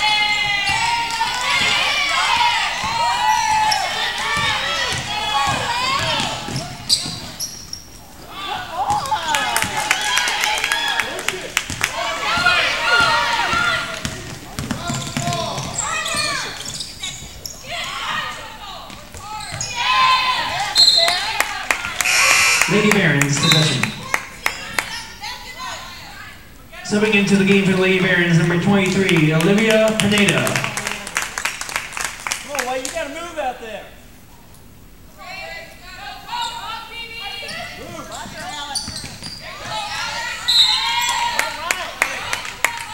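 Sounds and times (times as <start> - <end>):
people shouting: 0.0 - 6.8, 11.9 - 16.6
basketball dribbling: 0.2 - 7.6, 11.7 - 17.4, 38.2 - 40.0
sneaker squeaks on gym floor: 6.0 - 8.0, 14.6 - 17.6, 19.2 - 19.8, 37.4 - 41.0
burst of crowd noise: 21.7 - 24.5
whistle blast: 22.0 - 24.0, 40.4 - 41.0.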